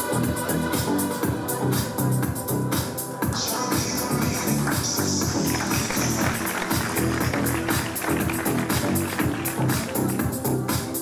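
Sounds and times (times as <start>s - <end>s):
music with fast beat and bass: 0.0s - 11.0s.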